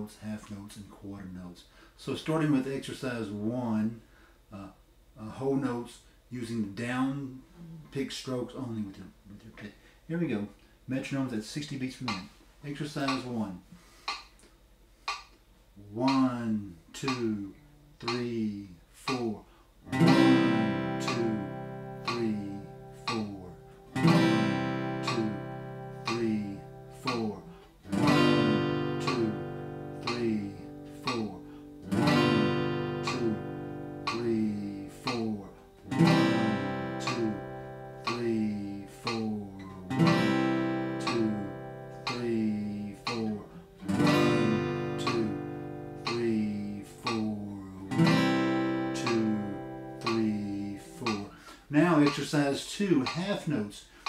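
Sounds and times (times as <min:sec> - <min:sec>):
metronome ticking: 0:12.0 - 0:12.2, 0:13.0 - 0:13.3, 0:16.1 - 0:16.3, 0:17.0 - 0:17.4, 0:18.0 - 0:18.3, 0:19.1 - 0:19.3, 0:20.0 - 0:52.3, 0:53.0 - 0:53.6
acoustic guitar strummed chords: 0:19.9 - 0:52.2.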